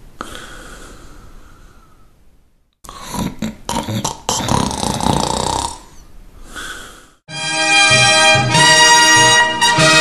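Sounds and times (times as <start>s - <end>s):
loud snoring: 2.9s - 6.0s.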